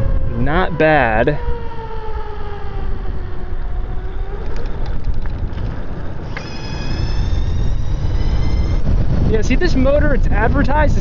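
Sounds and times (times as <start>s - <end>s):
rumble of wind and road: 0.0s - 11.0s
electric bike motor whining: 6.1s - 9.3s.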